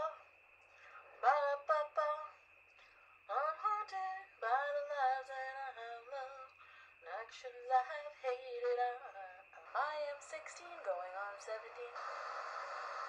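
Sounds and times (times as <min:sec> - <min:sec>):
woman singing wordless notes: 0:00.0 - 0:00.2, 0:01.2 - 0:02.4, 0:03.3 - 0:12.0.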